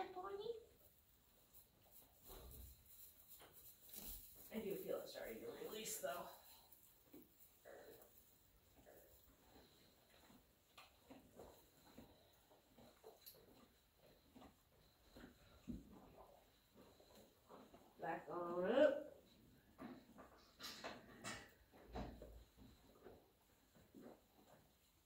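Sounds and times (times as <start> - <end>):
hands rustling on horse coat: 1.5 - 9.9.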